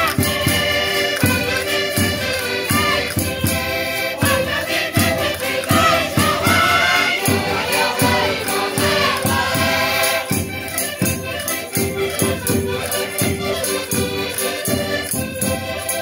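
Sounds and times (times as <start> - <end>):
concertinas playing: 0.0 - 16.0
women singing loudly: 2.7 - 3.2, 5.4 - 10.4.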